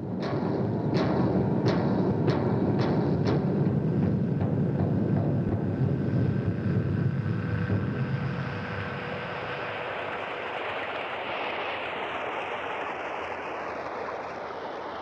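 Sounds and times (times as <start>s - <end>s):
deep rumbling noise: 0.0s - 10.3s.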